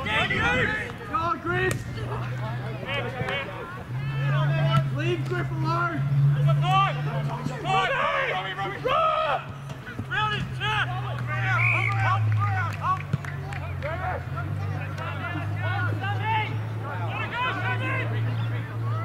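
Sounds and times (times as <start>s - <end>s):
players shouting and calling out: 0.0s - 19.0s.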